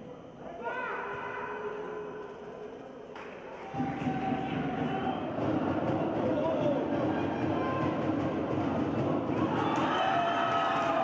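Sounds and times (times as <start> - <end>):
reverberant din of players' voices: 0.0 - 11.0.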